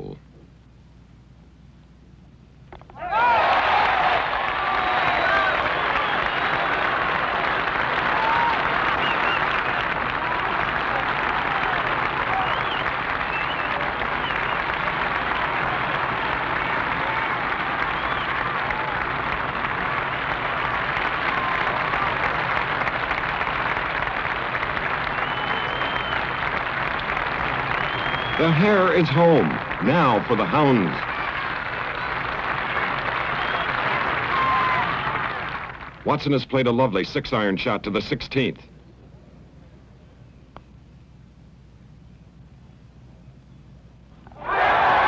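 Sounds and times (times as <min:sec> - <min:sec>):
crowd cheering and applauding: 0:03.0 - 0:36.0, 0:44.3 - 0:45.0.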